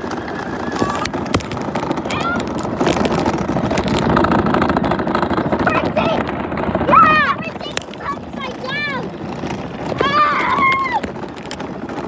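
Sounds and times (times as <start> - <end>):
toy truck motor and tyres: 0.0 - 12.0.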